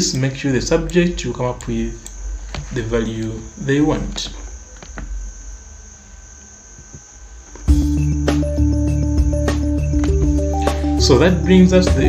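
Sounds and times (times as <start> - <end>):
high-pitched whine: 0.0 - 12.0.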